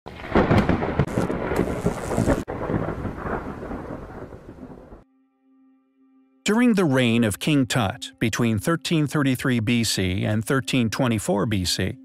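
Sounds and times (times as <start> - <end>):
thunder-like rumble with crackle: 0.1 - 5.0.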